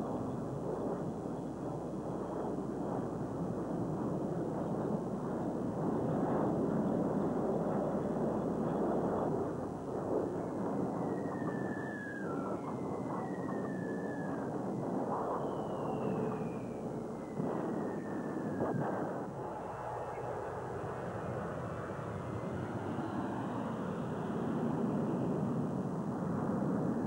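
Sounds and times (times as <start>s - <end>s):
short falling whistles: 15.2s - 18.7s.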